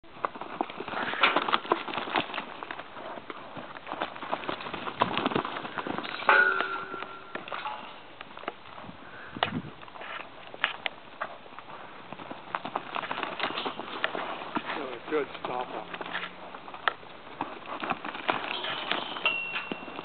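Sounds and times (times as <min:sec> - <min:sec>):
horse hoofbeats on dirt: 0:00.0 - 0:20.0.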